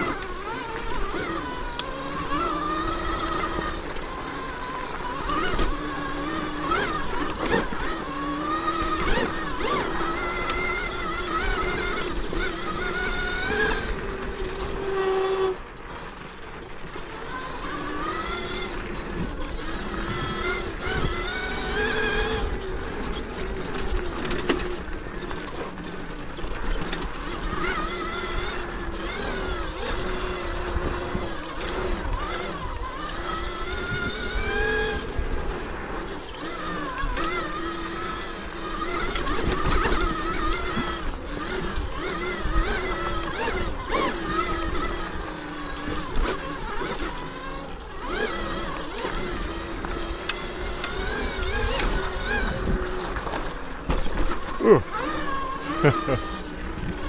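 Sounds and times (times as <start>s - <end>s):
electric motorbike motor whining: 0.0s - 57.0s.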